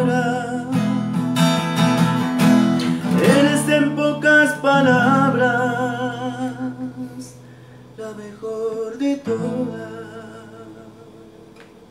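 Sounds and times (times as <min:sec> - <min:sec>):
acoustic guitar chord: 0:00.0 - 0:11.9.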